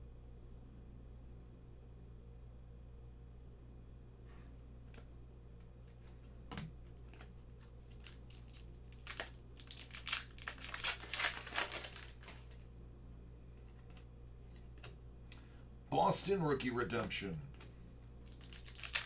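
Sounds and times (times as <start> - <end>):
foil wrapper crinkling: 7.1 - 12.7, 18.0 - 19.0.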